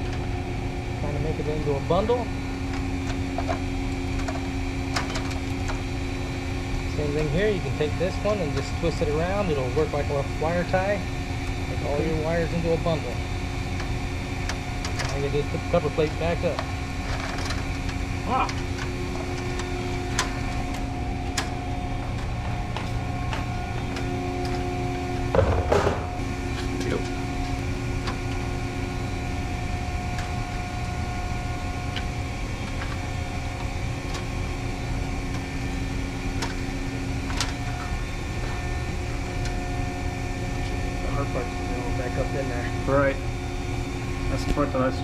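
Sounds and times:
machinery hum: 0:00.0 - 0:45.0.

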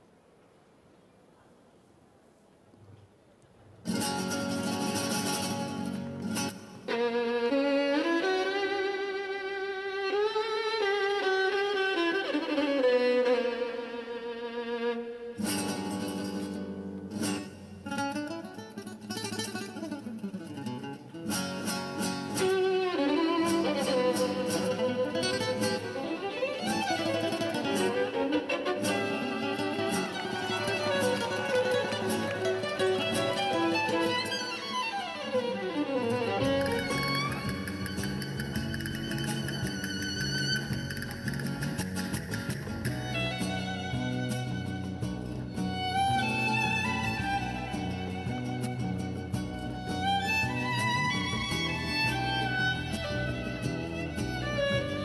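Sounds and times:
violin melody with strings: 0:06.4 - 0:15.9, 0:22.0 - 0:55.0
sharp plucked and struck notes: 0:23.3 - 0:55.0.

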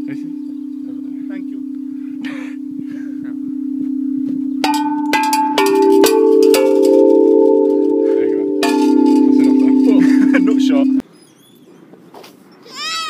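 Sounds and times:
metal tube chimes ringing: 0:00.0 - 0:11.0.

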